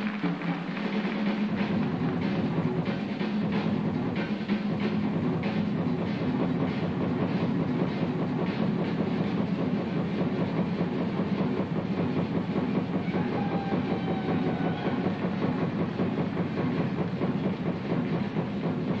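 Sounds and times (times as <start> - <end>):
jazz drum kit playing: 0.0 - 19.0.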